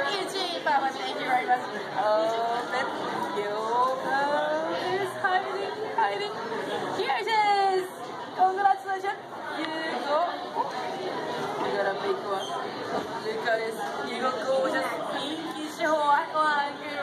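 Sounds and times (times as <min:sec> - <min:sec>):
people chattering in echoing hall: 0:00.0 - 0:17.0.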